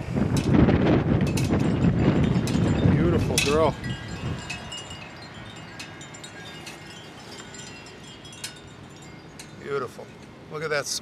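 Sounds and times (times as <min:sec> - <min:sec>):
wind buffeting microphone: 0:00.0 - 0:09.6.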